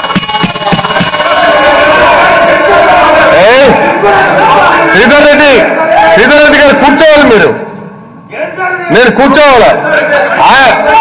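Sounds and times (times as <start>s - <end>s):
electric bell ringing: 0.0s - 3.5s.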